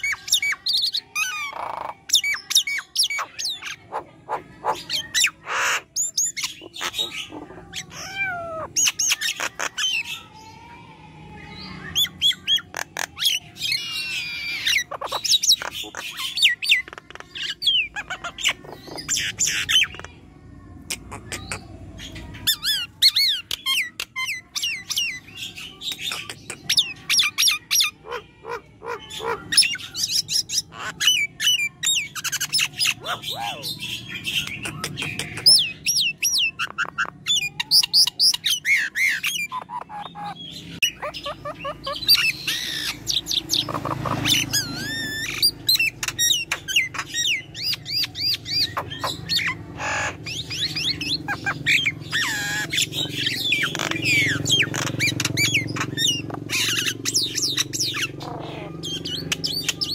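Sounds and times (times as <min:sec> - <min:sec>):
myna calling: 0:00.0 - 0:20.2, 0:20.8 - 0:59.9.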